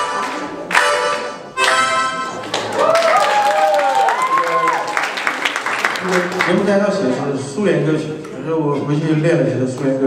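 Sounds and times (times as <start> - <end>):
harmonica playing chords: 0.0 - 2.4
applause: 2.4 - 6.7.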